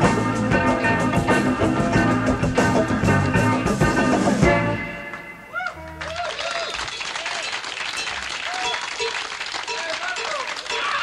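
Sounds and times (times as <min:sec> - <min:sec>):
audience clapping and cheering: 0:05.1 - 0:11.0
short whoops: 0:05.5 - 0:06.8.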